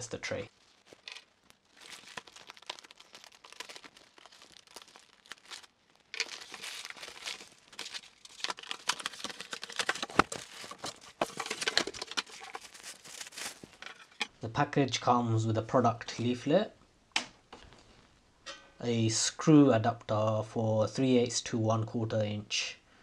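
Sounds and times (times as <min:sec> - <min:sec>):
plastic bag crinkling: 0:00.3 - 0:14.2
packaging rustling and scraping: 0:00.5 - 0:14.3.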